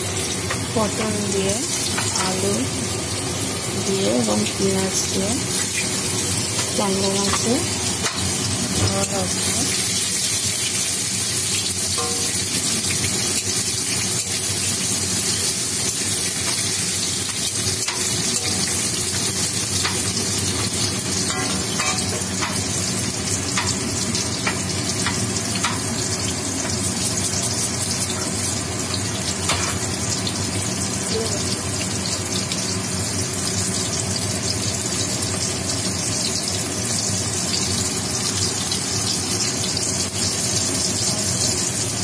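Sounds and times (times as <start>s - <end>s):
vegetables sizzling in hot oil: 0.0s - 42.0s.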